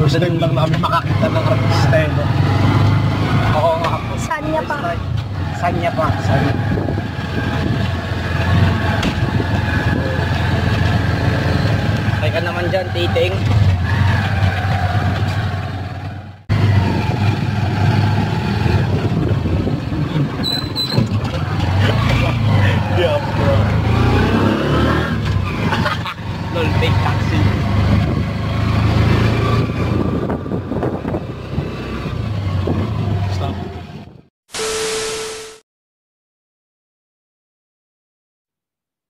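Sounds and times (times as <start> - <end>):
people talking: 0.0 - 2.3, 3.5 - 5.0, 12.2 - 13.5, 22.7 - 23.7, 26.5 - 27.5.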